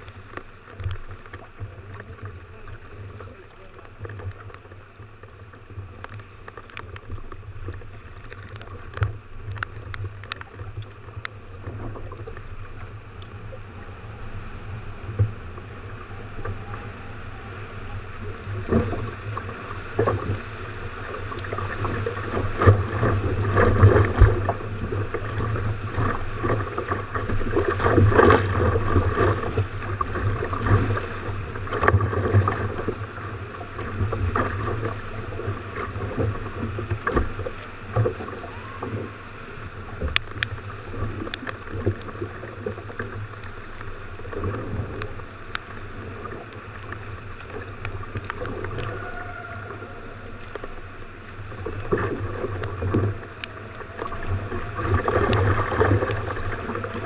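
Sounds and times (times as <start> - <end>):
sea water splashing against hull: 0.0 - 57.0.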